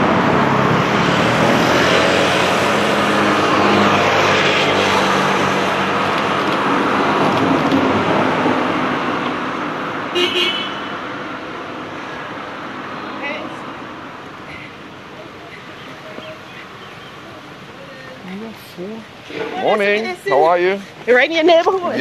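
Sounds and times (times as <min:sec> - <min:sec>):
motor scooter passing: 0:00.0 - 0:09.9.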